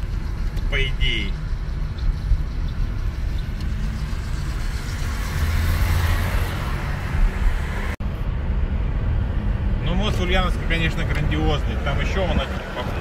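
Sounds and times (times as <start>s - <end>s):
car engine hum: 0.0s - 13.0s
tyre and road rumble: 0.0s - 13.0s.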